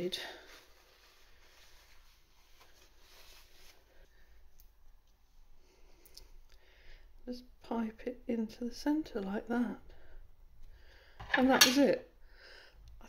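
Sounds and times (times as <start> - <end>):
paper towel rubbing: 0.0 - 4.1.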